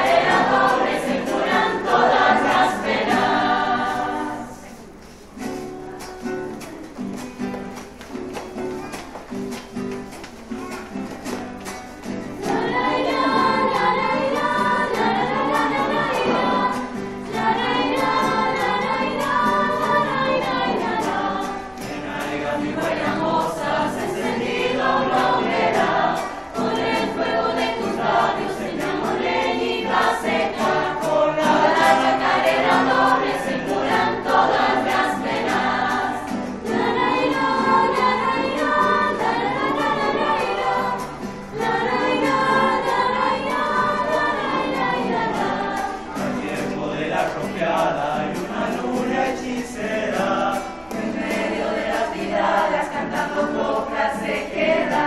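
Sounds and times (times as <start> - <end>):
young choir singing: 0.0 - 7.5, 10.7 - 55.0
strummed acoustic guitar: 0.0 - 55.0.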